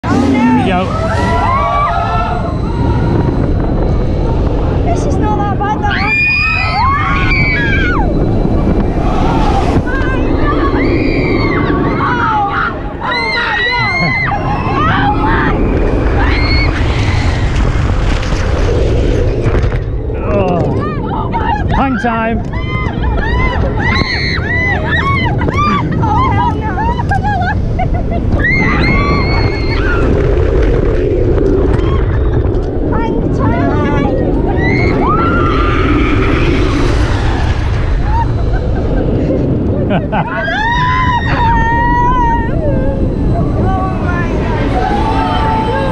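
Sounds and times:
roller coaster train rumbling: 0.0s - 45.9s
wind rushing on microphone: 0.0s - 45.9s
riders screaming: 0.1s - 3.8s, 5.8s - 18.0s, 22.4s - 27.5s, 28.3s - 32.6s, 34.3s - 38.4s, 40.1s - 45.9s.

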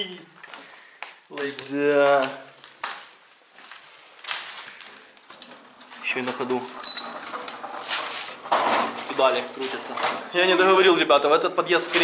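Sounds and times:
metal pedal car rattling: 5.4s - 10.3s.

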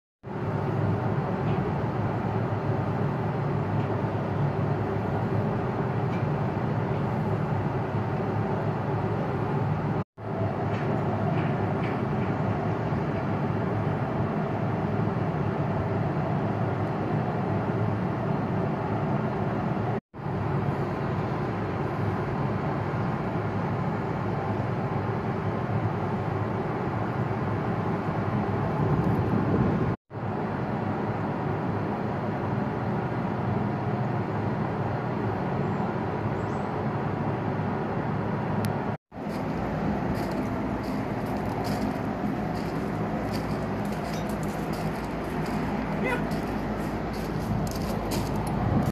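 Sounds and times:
rumbling vehicle noise: 0.3s - 48.9s
faint high clicks and squeaks: 43.5s - 45.6s.

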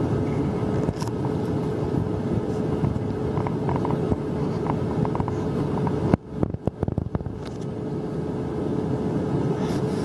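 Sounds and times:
airliner cabin engine rumble: 0.0s - 10.0s
constant hum tone: 0.0s - 10.0s.

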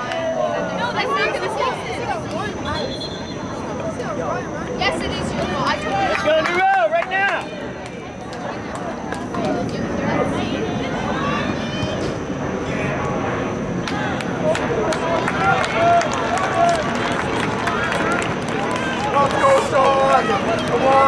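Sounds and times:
outdoor background noise: 0.0s - 21.0s
players shouting: 13.8s - 21.0s.

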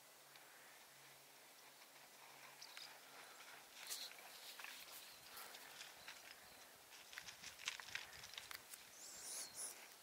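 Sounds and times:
faint clicks and rustles in brush: 0.4s - 9.0s.

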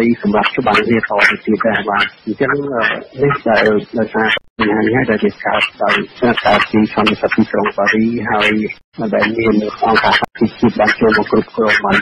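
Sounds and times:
person reading a news report: 0.0s - 12.0s.

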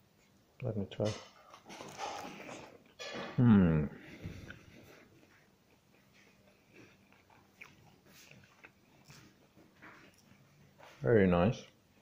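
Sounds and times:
chewing crispy flatbread: 4.4s - 11.0s.

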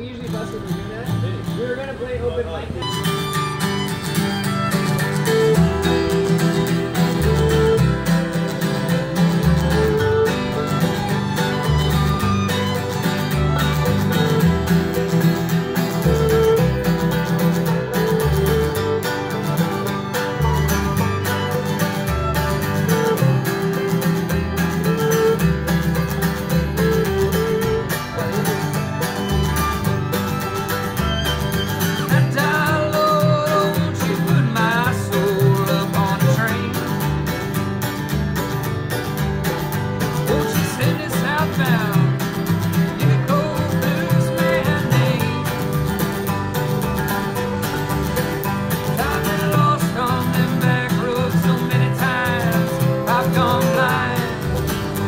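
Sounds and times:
fiddle: 0.0s - 55.0s
string bass: 0.0s - 55.0s
strummed acoustic guitar: 0.0s - 55.0s.

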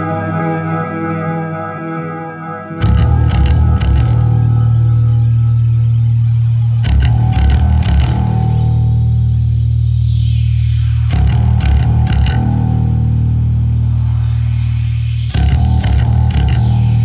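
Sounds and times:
bass and guitar rock riff: 0.0s - 17.0s
high effect sweep falling in pitch: 0.0s - 17.0s.

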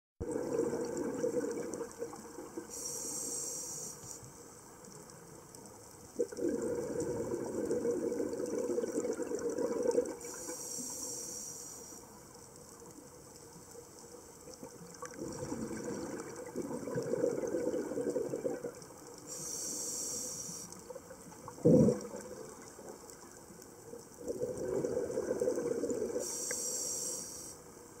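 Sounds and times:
diver breathing through regulator: 2.7s - 4.2s, 26.1s - 27.6s
bubbling exhale: 6.2s - 11.9s, 21.5s - 22.4s, 24.2s - 27.6s.

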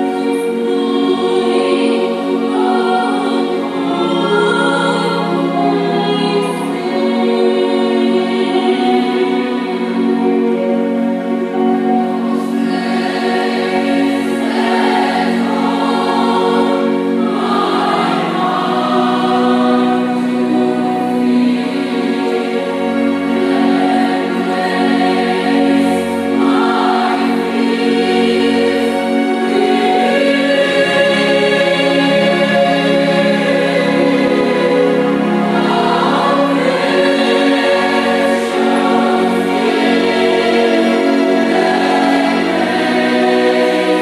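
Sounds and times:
choir singing held chords: 0.0s - 44.0s.

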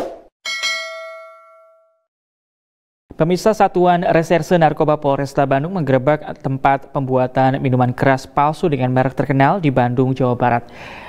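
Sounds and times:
bright bell ding: 0.4s - 2.1s.

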